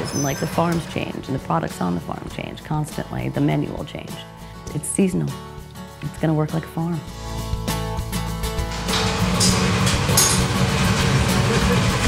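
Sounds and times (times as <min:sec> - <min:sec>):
commercial kitchen rumble: 0:00.0 - 0:02.0, 0:08.6 - 0:12.0
soft background music: 0:00.3 - 0:12.0.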